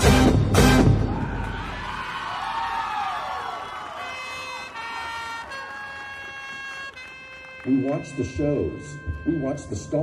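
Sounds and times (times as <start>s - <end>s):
marching band sliding pitches: 0.0s - 2.1s, 3.9s - 10.0s.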